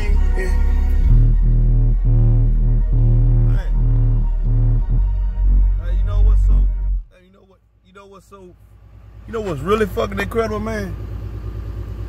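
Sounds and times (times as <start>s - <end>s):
bass-heavy electronic music: 0.0s - 7.1s
vocals: 0.0s - 8.6s.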